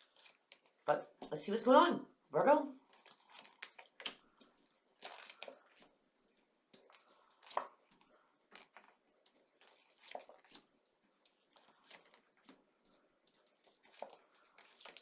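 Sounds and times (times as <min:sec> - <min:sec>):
cards being shuffled: 0:02.9 - 0:05.9, 0:06.7 - 0:15.0.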